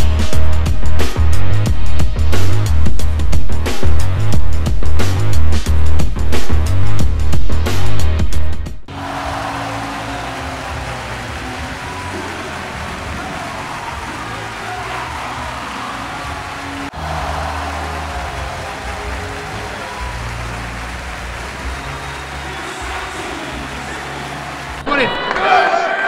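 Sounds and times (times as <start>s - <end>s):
music with deep bass line: 0.0s - 8.9s
crowd noise: 8.9s - 26.0s.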